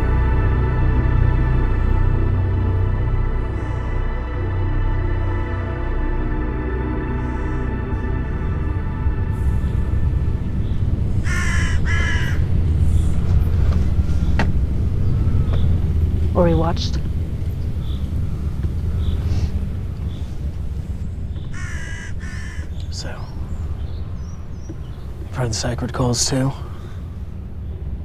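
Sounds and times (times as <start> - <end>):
steady low rumble: 0.0 - 28.0
crow calling: 10.6 - 12.6, 21.3 - 25.2.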